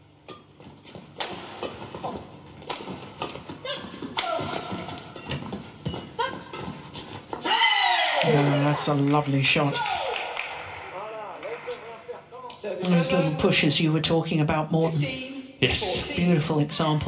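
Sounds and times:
racket hitting shuttlecock: 0.2 - 7.5
court shoes squeaking: 0.2 - 7.6.

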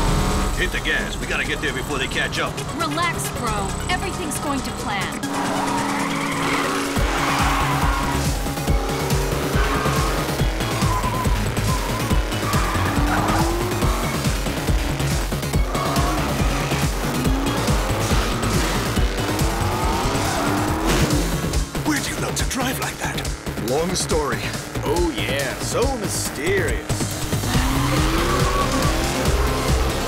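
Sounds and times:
action music with pulsing beat: 0.0 - 30.0
buggy engine revving: 0.0 - 30.0
tyres squealing: 5.2 - 22.0, 27.0 - 30.0.

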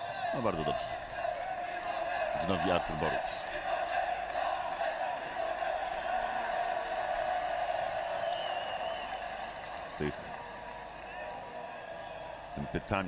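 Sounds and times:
stadium crowd chanting: 0.0 - 13.0.

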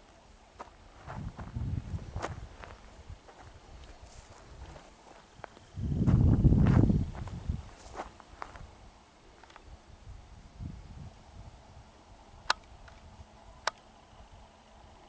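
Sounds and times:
footsteps on grass: 0.6 - 8.7
microphone handling rumble: 1.0 - 8.7.

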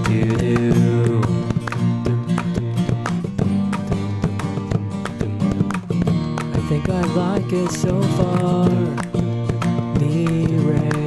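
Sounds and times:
acoustic guitar strumming: 0.0 - 11.0
clicking mouth percussion: 0.0 - 11.0.

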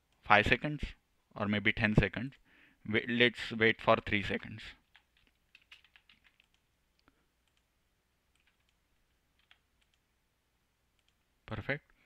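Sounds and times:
computer keyboard typing: 4.8 - 6.7, 7.4 - 7.7, 8.3 - 10.1, 11.0 - 11.2.

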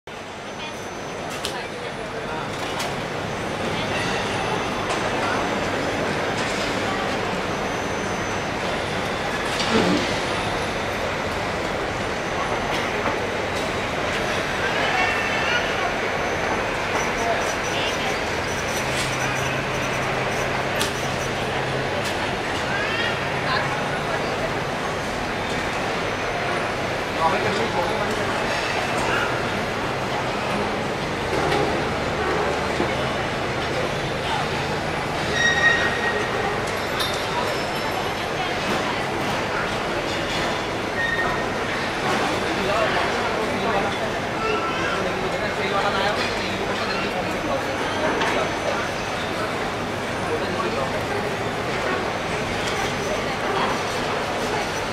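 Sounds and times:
faint voices: 0.1 - 54.9.

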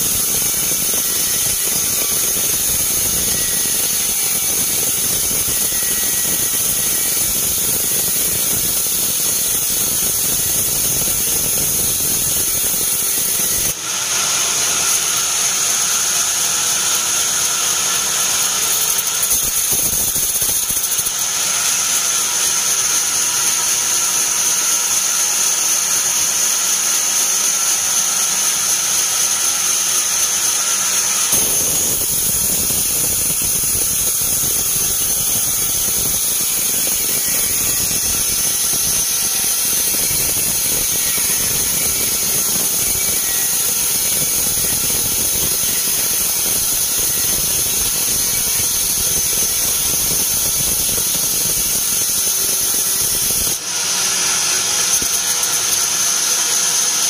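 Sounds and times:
high whine of saw blade: 0.0 - 57.0
bandsaw mill motor rumble: 27.2 - 57.0.

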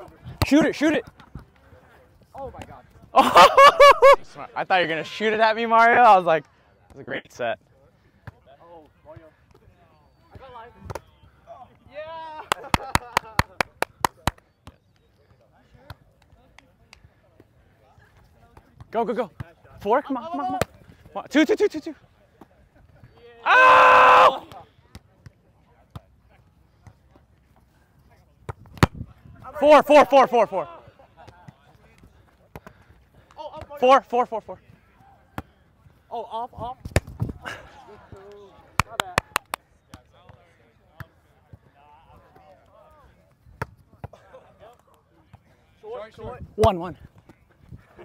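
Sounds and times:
faint voices of players: 4.3 - 12.6, 13.2 - 23.5, 24.3 - 48.0
loud held shout: 23.4 - 24.5.

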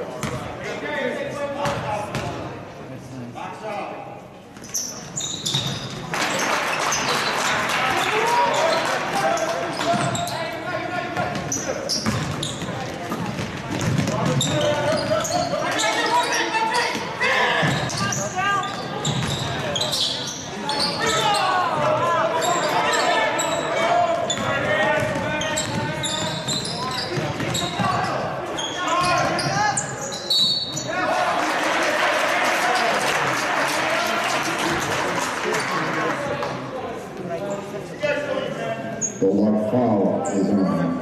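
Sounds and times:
sneakers squeaking: 0.1 - 0.6, 1.6 - 2.4, 4.5 - 31.0, 38.9 - 39.2
basketball bouncing on hardwood: 12.0 - 15.0.

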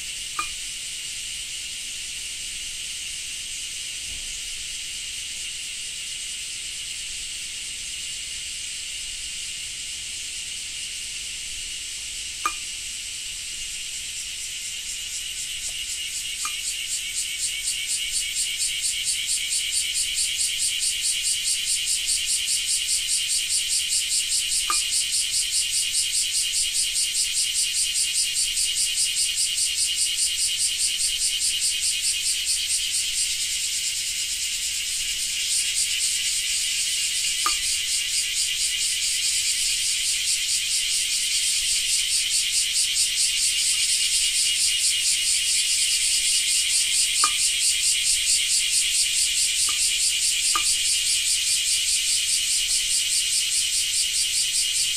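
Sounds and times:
cicadas buzzing: 0.0 - 54.9.

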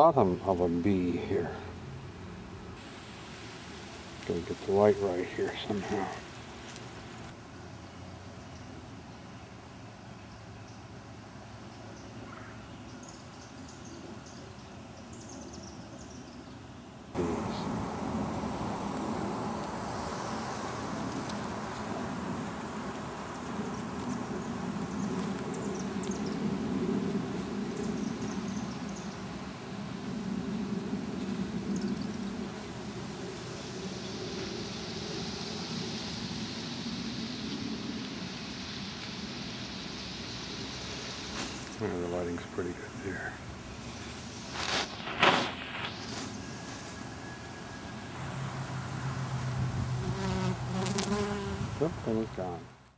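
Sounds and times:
honey bees buzzing: 17.2 - 37.6, 48.1 - 52.6.

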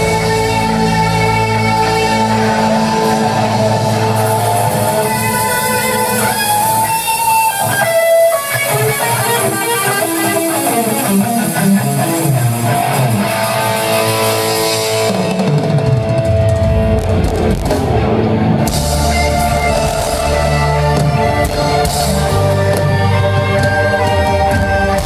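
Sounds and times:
electric guitar lead line: 0.0 - 25.0
deep low guitar notes: 10.3 - 25.0.

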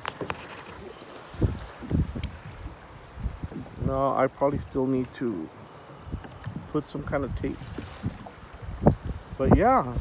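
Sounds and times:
choppy water: 0.0 - 10.0
wind buffeting microphone: 0.0 - 10.0.

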